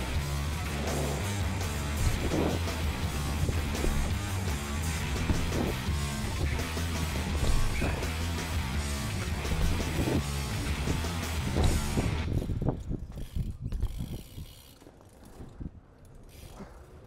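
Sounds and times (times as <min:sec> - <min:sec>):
background music: 0:00.0 - 0:12.3
bike freewheel hub ticking: 0:00.0 - 0:17.0.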